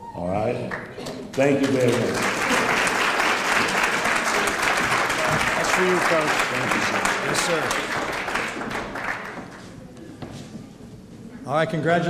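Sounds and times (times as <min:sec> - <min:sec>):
audience applause: 0:01.4 - 0:09.7.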